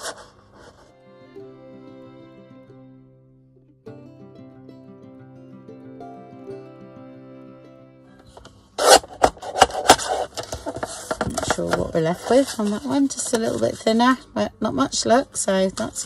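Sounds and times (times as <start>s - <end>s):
instrumental background music: 0.5s - 10.3s, 11.4s - 16.0s
clicks and paper handling: 8.3s - 13.9s.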